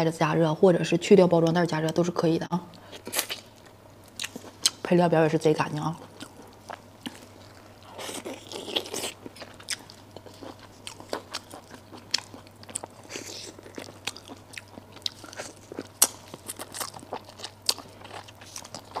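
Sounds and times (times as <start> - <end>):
wet chewing: 2.9 - 4.8, 5.8 - 19.0
crunching bone while eating: 6.0 - 19.0.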